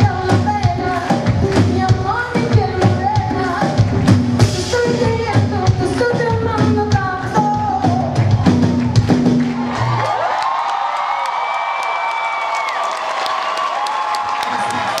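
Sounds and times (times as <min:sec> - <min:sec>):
live band with bass and horns: 0:00.0 - 0:10.0
crowd cheering: 0:07.8 - 0:15.0.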